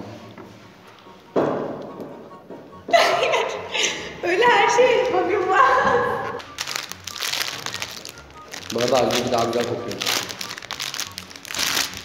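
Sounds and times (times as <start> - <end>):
foil wrapper crinkling: 6.4 - 12.0.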